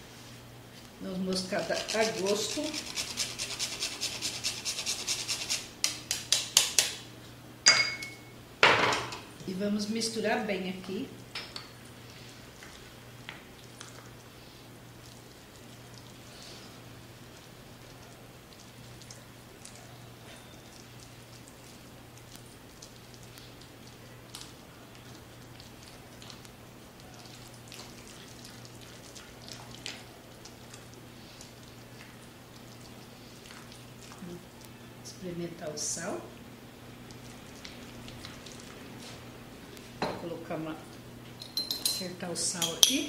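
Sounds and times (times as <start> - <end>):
spatula squelching mashed potato: 0.8 - 6.9, 12.1 - 36.1, 36.8 - 39.9.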